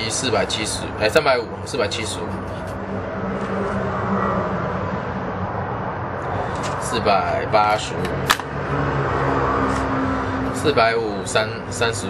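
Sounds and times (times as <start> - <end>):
low drone: 1.5 - 6.6.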